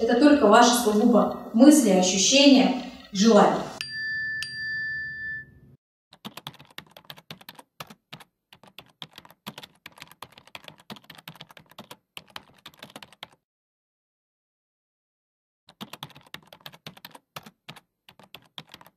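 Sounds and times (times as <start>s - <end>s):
ringing chime: 3.8s - 5.8s
keyboard typing clicks: 6.2s - 13.4s, 15.7s - 18.9s.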